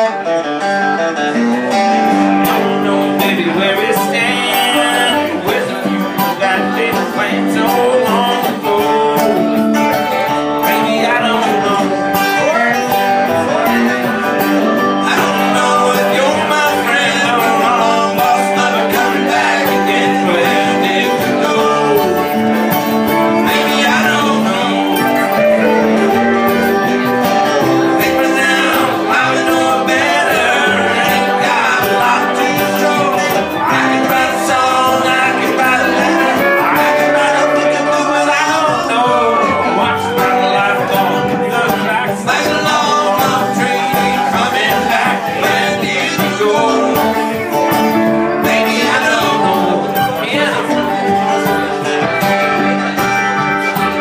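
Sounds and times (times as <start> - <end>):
live country band playing: 0.0 - 54.0.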